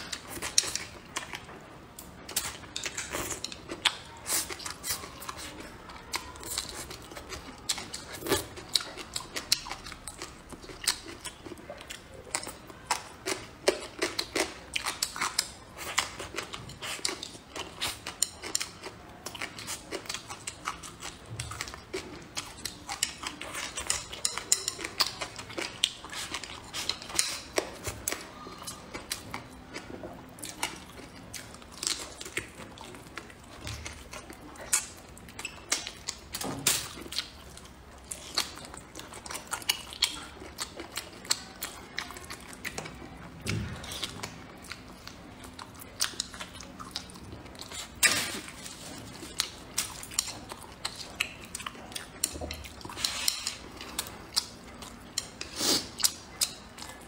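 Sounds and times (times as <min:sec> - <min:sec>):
chewing with mouth clicks: 0:00.0 - 0:57.0.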